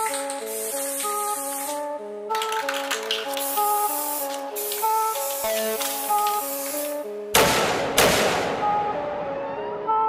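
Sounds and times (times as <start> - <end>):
hiss of noise: 0.0 - 1.8, 3.3 - 7.0.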